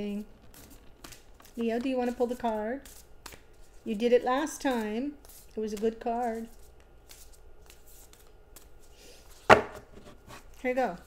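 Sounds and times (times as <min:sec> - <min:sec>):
cards rustling and clicking: 0:00.1 - 0:03.8, 0:04.6 - 0:09.5
card deck knocked on tabletop: 0:09.5 - 0:09.9.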